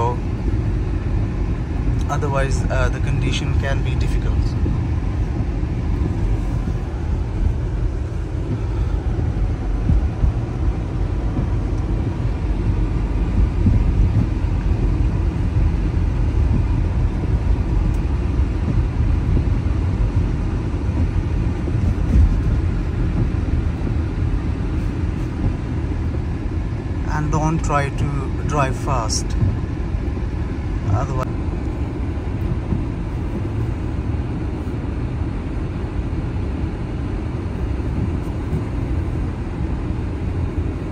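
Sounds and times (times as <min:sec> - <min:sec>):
car engine and tyres rumbling: 0:00.0 - 0:40.9.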